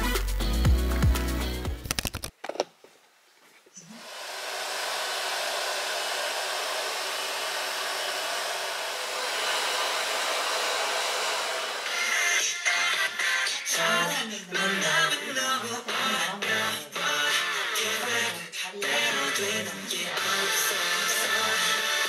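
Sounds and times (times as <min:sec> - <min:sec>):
music: 0:00.0 - 0:01.9, 0:12.0 - 0:22.0
hair dryer blowing: 0:04.0 - 0:13.2, 0:20.1 - 0:22.0.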